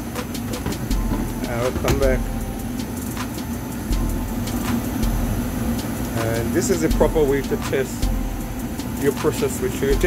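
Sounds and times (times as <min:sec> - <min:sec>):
gas furnace humming: 0:00.0 - 0:10.0
deep pulsing rumble: 0:00.9 - 0:02.9, 0:03.9 - 0:05.6, 0:06.9 - 0:08.8.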